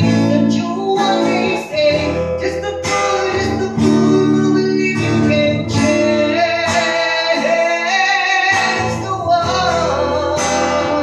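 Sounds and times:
acoustic guitar: 0:00.0 - 0:11.0.

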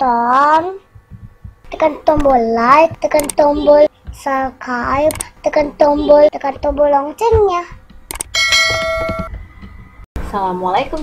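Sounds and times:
quick clicks: 0:03.1 - 0:03.4, 0:05.0 - 0:05.4, 0:08.1 - 0:08.3
notification bell ding: 0:08.3 - 0:09.3.

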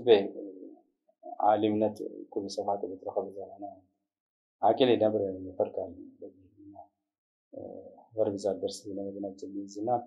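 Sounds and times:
man talking: 0:00.0 - 0:03.8, 0:04.6 - 0:06.8, 0:07.6 - 0:10.0.

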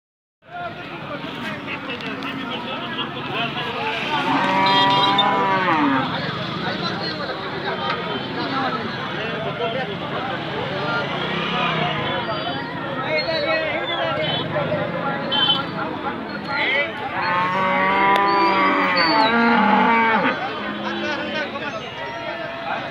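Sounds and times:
cow mooing: 0:04.2 - 0:06.1, 0:17.1 - 0:21.0.

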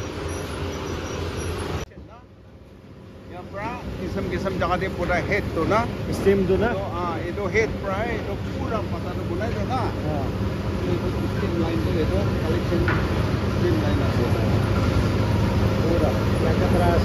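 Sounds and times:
factory machinery humming: 0:00.0 - 0:17.0
people talking: 0:03.3 - 0:14.9, 0:15.7 - 0:17.0.

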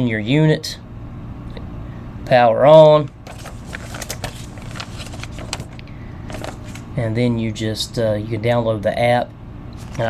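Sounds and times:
paper pages rustling: 0:03.1 - 0:07.0, 0:09.8 - 0:10.0.

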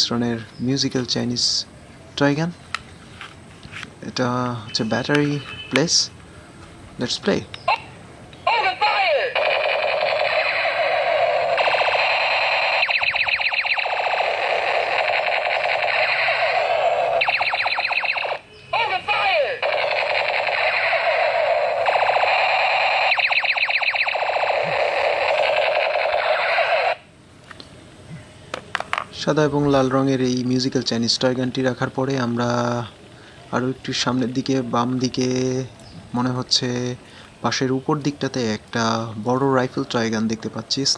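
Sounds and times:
toy pistol electronic effects: 0:08.5 - 0:27.1.

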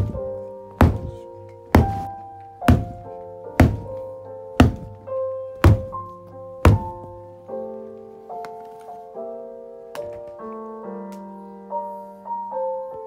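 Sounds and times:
piano music: 0:00.0 - 0:13.0.

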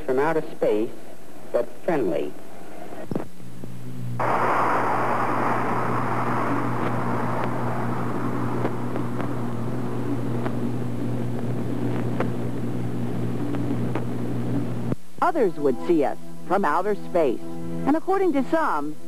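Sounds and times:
steady low hum: 0:00.0 - 0:19.0
rushing hiss: 0:04.2 - 0:09.5.

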